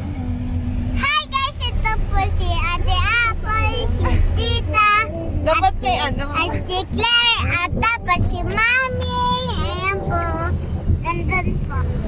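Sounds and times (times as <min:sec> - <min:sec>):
car cabin rumble: 0:00.0 - 0:12.0
girl singing: 0:01.0 - 0:05.8, 0:06.4 - 0:10.5.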